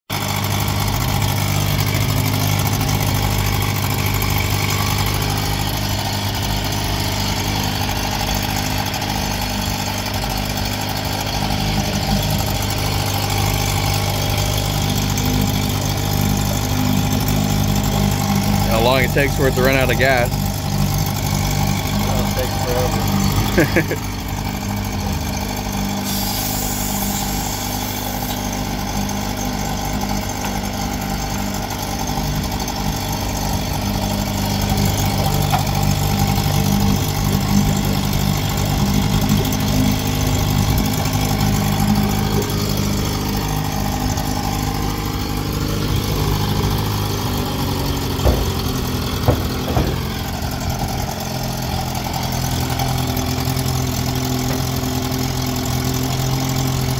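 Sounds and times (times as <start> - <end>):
outboard motor idling: 0.1 - 56.9
short sharp knocks: 48.1 - 50.6.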